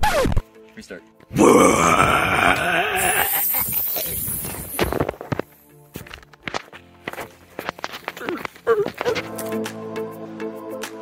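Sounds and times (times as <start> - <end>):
background music: 0.0 - 11.0
growling bear-like roar: 1.3 - 3.9.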